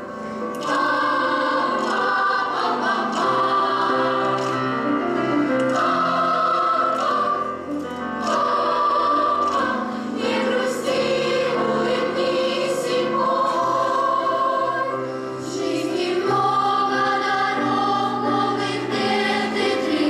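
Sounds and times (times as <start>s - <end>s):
grand piano: 0.0s - 20.0s
girls' choir singing: 0.4s - 20.0s.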